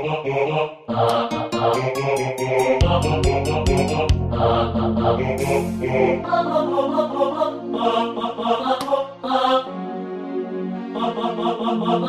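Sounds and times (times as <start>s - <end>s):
synthesized choir syllables: 0.0s - 12.0s
synth pad chord: 9.2s - 12.0s.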